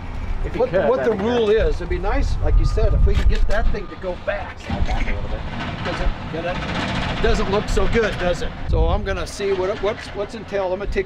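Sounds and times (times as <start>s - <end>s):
steady background rumble: 0.0s - 11.0s
man speaking: 0.4s - 6.6s.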